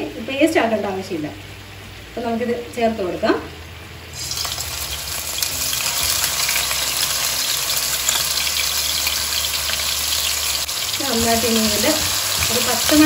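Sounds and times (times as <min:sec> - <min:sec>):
paste sizzling in hot oil: 0:04.2 - 0:13.0.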